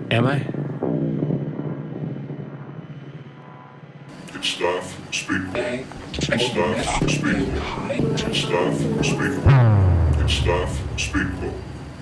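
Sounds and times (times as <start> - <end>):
low electronic drone: 0.0 - 12.0.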